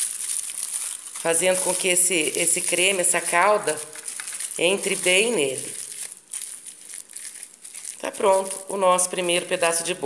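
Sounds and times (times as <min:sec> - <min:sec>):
aluminium foil crinkling: 0:00.0 - 0:10.0.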